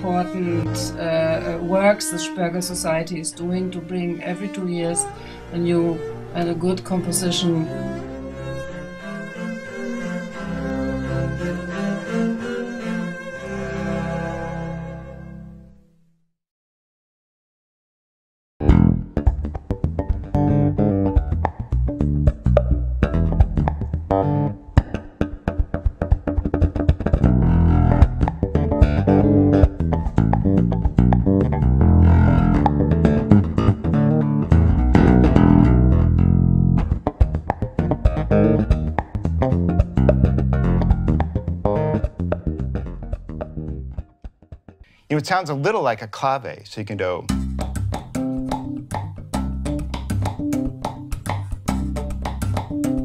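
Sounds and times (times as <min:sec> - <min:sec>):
slap electric bass: 0:18.6 - 0:44.7, 0:47.3 - 0:53.0.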